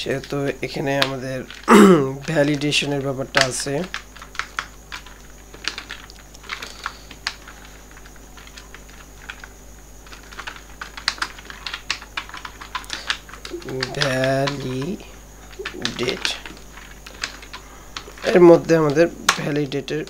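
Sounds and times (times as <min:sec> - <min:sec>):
keyboard typing: 0:03.9 - 0:19.6
low steady hum: 0:12.4 - 0:20.0.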